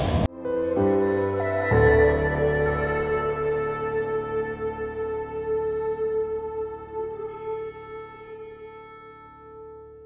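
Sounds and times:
soft sustained chord: 0.4s - 10.0s.

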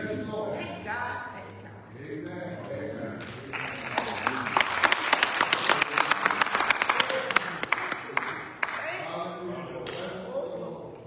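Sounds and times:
congregation applauding: 3.2s - 9.1s.

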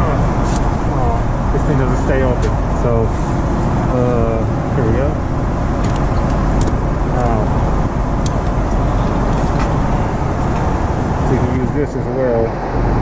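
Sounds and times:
airplane cabin noise: 0.0s - 13.0s.

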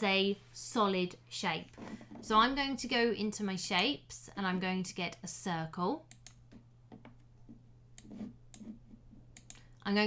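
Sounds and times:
computer mouse clicking: 6.1s - 7.3s, 8.0s - 9.7s.

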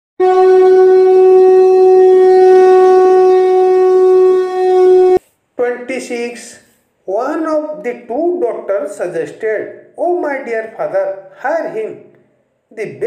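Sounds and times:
conch shell blown: 0.2s - 5.2s.

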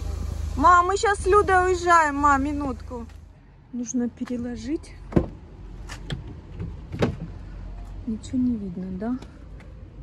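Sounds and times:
objects clicking and knocking in car: 5.1s - 7.4s.

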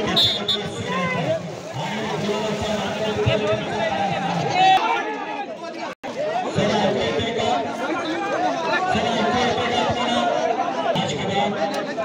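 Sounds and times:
crowd of men talking: 0.0s - 12.0s.

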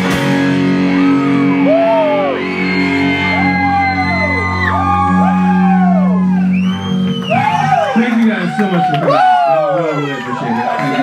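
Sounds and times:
rock band chord ringing: 0.0s - 6.6s
people whooping and yelling: 0.9s - 11.0s.

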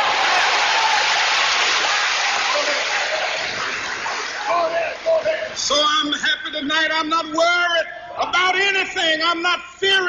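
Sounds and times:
audience applauding: 0.0s - 5.6s.

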